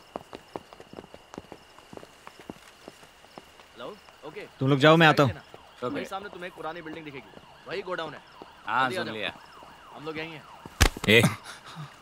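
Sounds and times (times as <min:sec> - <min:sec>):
footsteps on leaves and twigs: 0:00.0 - 0:04.2
night insects chirring: 0:00.0 - 0:12.0.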